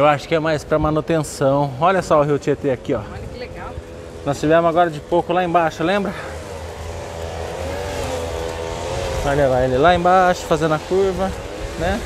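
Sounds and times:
distant vehicle engine droning: 0.0 - 12.0.

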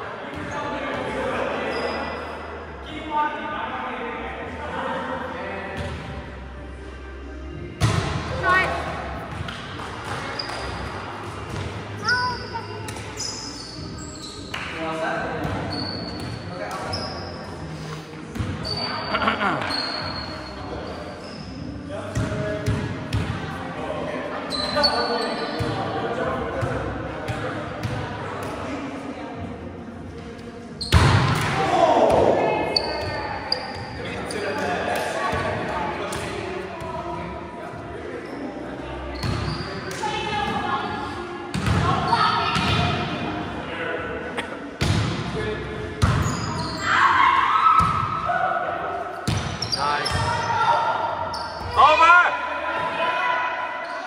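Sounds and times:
ball bouncing on court floor: 49.2 - 50.3.

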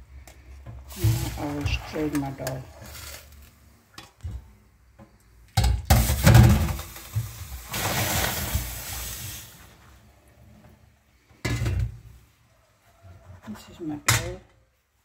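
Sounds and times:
water splashing through strainer: 6.0 - 9.6.

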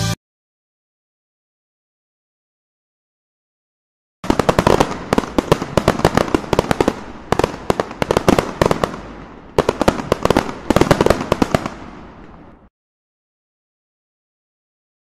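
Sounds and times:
fireworks popping and crackling: 4.2 - 12.7.

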